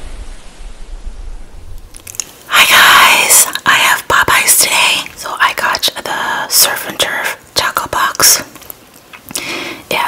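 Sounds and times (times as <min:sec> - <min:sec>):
rushing noise rumble to hiss: 0:00.0 - 0:03.8.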